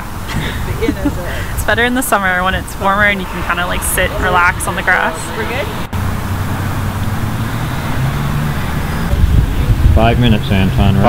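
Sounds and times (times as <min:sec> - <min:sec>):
traffic rumble: 0:00.0 - 0:11.0
vehicle engine hum: 0:00.0 - 0:11.0
wind buffeting microphone: 0:00.0 - 0:11.0.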